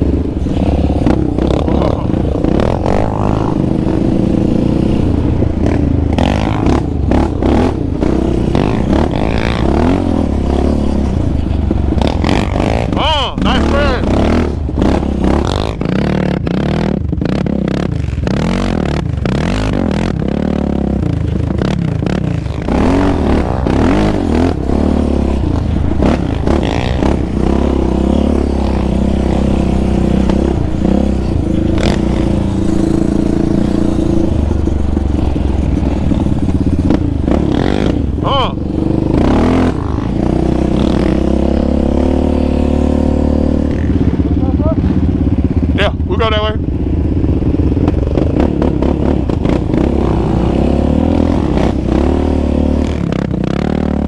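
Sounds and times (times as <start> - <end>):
quad engine revving: 0.0 - 54.0.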